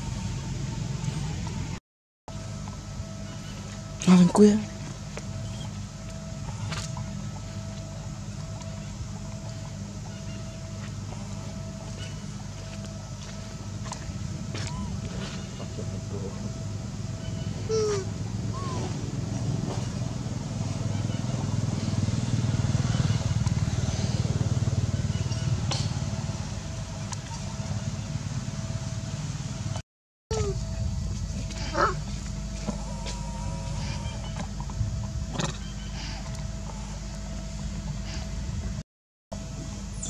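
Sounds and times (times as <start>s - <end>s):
low steady rumble: 0.0s - 38.8s.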